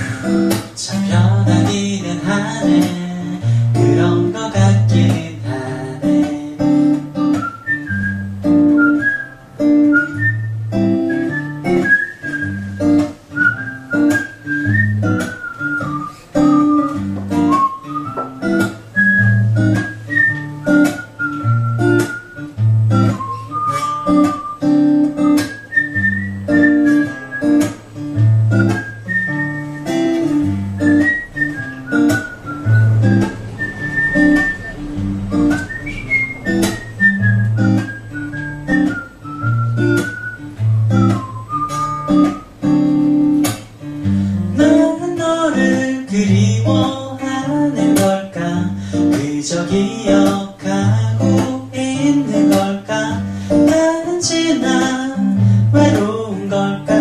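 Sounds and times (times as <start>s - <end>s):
strummed acoustic guitar: 0.0s - 57.0s
whistled melody: 7.2s - 43.0s.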